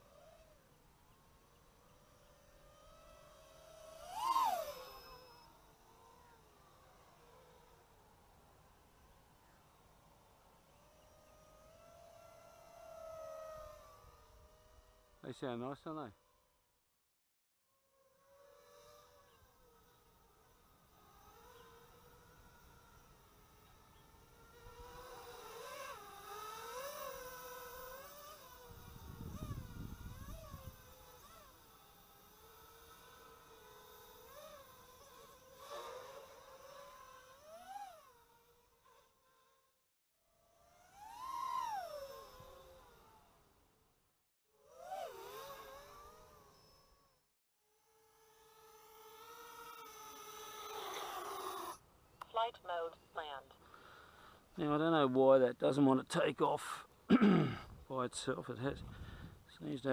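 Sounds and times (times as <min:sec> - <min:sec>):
drone motors and propellers whining: 0:00.0 - 0:16.7, 0:17.7 - 0:51.8.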